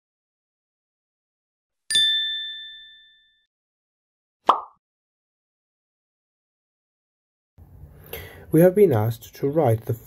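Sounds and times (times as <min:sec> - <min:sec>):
bright bell-like ding: 0:01.9 - 0:03.5.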